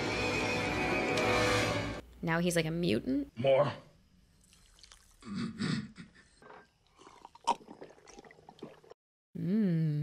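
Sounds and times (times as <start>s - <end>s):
man gulping a drink: 4.4s - 9.0s.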